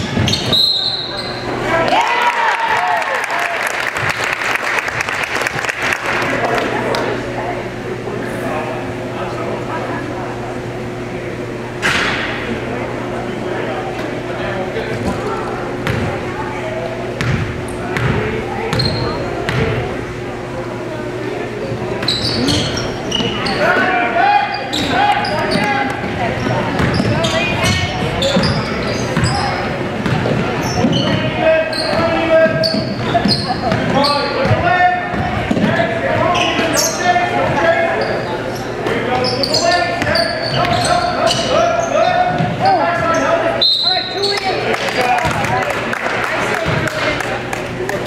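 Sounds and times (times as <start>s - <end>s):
sneakers squeaking on hardwood: 0.0s - 1.5s, 17.2s - 19.8s, 21.8s - 44.6s
high whistle: 0.4s - 1.4s, 43.6s - 44.3s
basketball bouncing: 15.8s - 16.2s, 17.2s - 19.8s, 26.4s - 31.3s, 31.9s - 35.8s.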